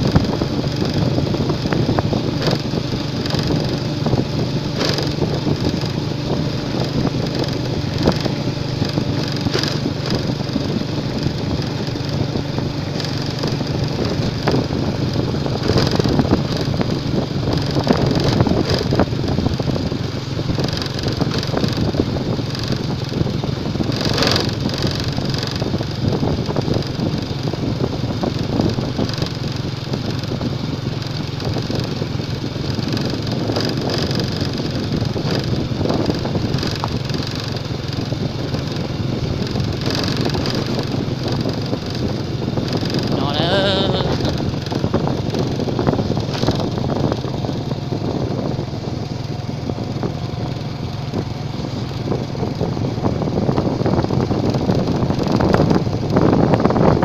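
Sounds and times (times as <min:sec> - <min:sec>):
bumps from uneven road: 0:00.0 - 0:57.0
small motorcycle engine running: 0:00.0 - 0:57.0.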